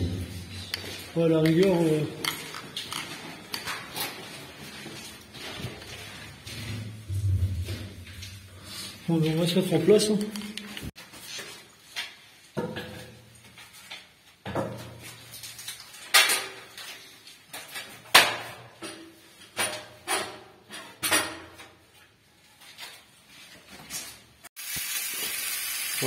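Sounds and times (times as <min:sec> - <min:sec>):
sausages sizzling in a pan: 0:24.6 - 0:26.0.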